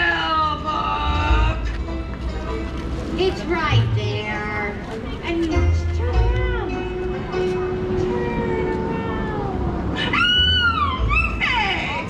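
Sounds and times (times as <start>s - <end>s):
high voice wailing: 8.0s - 12.0s.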